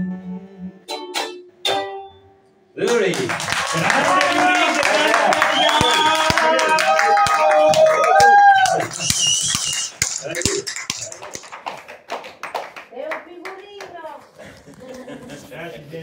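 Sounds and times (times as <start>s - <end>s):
audience clapping: 2.8s - 15.1s
audience calling out: 3.6s - 11.1s.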